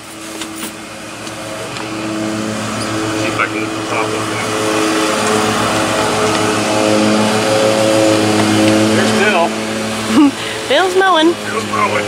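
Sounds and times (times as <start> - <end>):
lawn mower engine running: 0.0 - 12.0.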